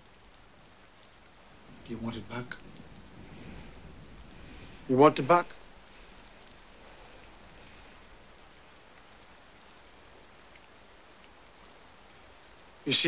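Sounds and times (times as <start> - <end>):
steady hiss: 0.0 - 13.0
small ticks: 8.5 - 12.3.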